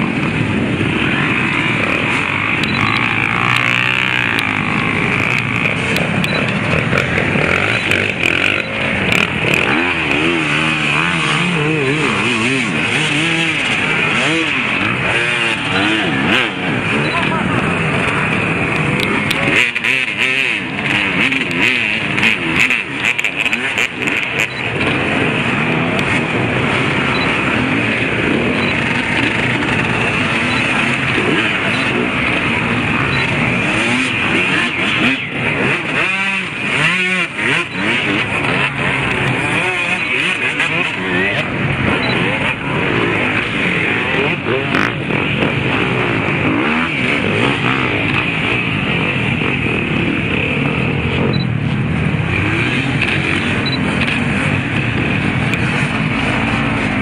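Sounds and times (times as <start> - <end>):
dirt bike engines idling and revving: 0.0 - 57.0
nearby motorbike revving hard: 0.0 - 57.0.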